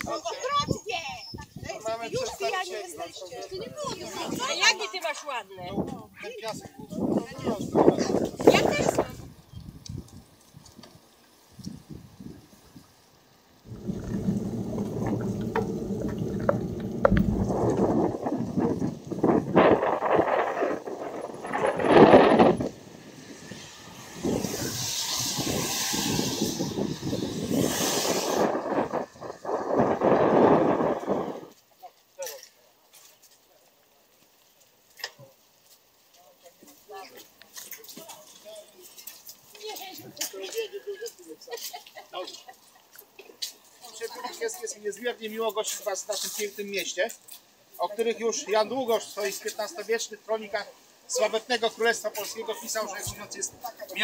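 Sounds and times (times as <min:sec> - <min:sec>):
indistinct voices: 0:13.7 - 0:19.0
wind buffeting microphone: 0:13.7 - 0:31.6.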